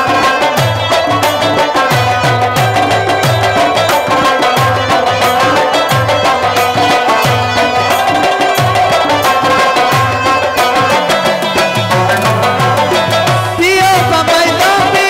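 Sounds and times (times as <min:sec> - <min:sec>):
harmonium held tones: 0:00.0 - 0:15.0
rubab plucking a melody: 0:00.0 - 0:15.0.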